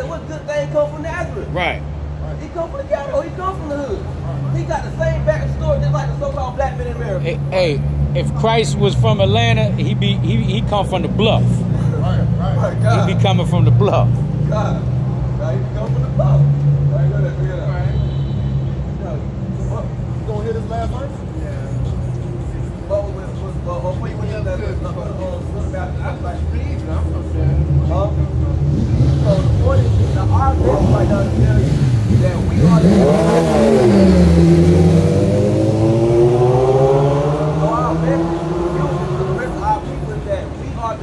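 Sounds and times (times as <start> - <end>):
traffic rumble: 0.0 - 41.0
vehicle engine revving past: 27.5 - 40.2.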